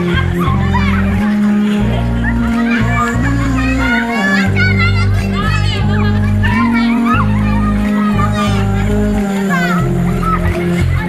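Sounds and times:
children shouting in pool: 0:00.0 - 0:11.0
pop love song: 0:00.0 - 0:11.0.

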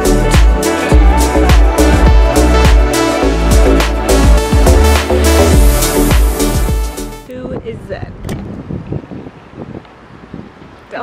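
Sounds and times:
wind buffeting microphone: 0:07.3 - 0:11.0.

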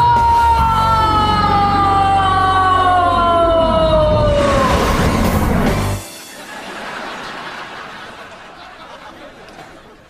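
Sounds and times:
boy wailing: 0:00.0 - 0:05.0.

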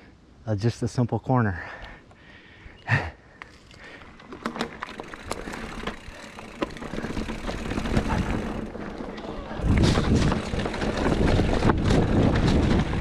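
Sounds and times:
bike clicking and rattling: 0:03.4 - 0:13.0
bike tyres on dirt: 0:03.4 - 0:13.0
wind on microphone: 0:09.5 - 0:13.0.

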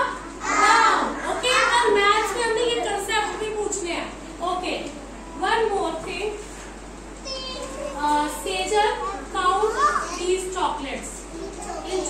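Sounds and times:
young children talking and calling: 0:00.0 - 0:12.0.

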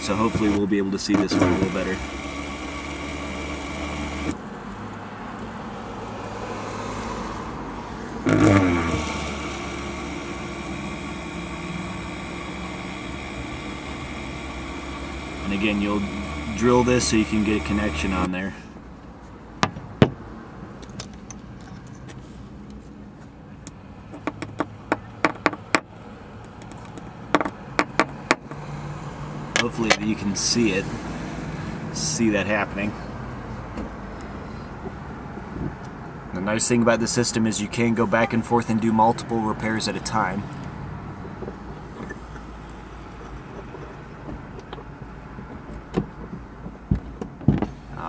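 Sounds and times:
motor vehicle hum: 0:00.0 - 0:48.0.

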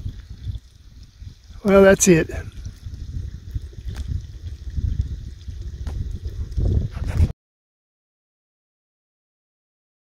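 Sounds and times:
wind buffeting microphone: 0:00.0 - 0:07.3.

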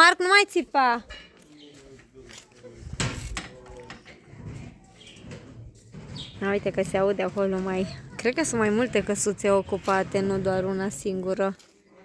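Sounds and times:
faint distant voices: 0:01.0 - 0:12.0.

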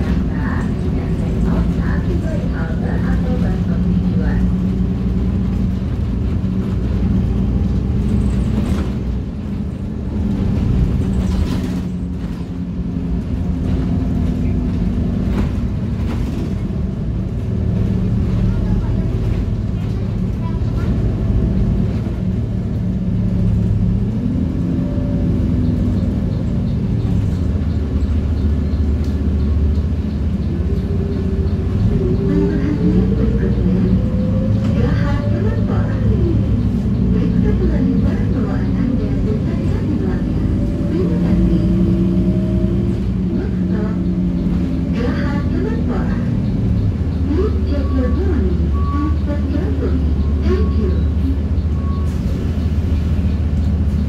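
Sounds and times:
bus engine hum: 0:00.0 - 0:54.0
road noise: 0:00.0 - 0:54.0.

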